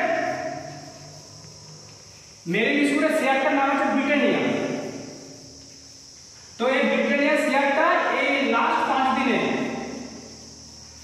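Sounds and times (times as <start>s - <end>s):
man speaking: 0.0s - 0.8s, 2.5s - 5.0s, 6.6s - 10.1s.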